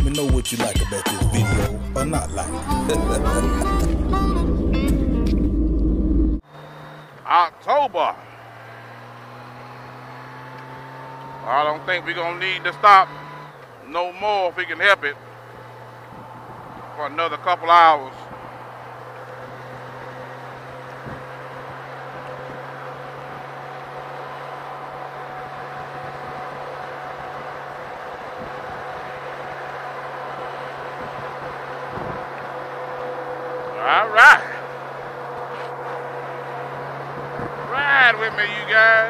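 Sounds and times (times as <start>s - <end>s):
motorcycle engine drone: 1.4s - 39.0s
wind and road noise: 1.5s - 39.0s.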